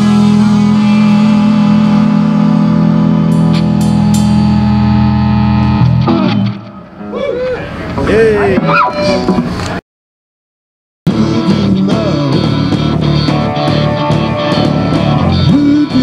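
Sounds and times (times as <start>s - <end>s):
cymbal crashes: 0.0s - 6.4s
rock band ringing chord: 0.0s - 7.0s, 11.1s - 16.0s.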